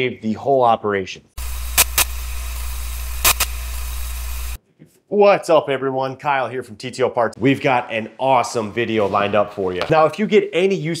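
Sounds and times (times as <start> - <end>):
glitch bursts: 1.4 - 4.6
low hum: 1.4 - 4.6
static hiss: 1.4 - 4.6.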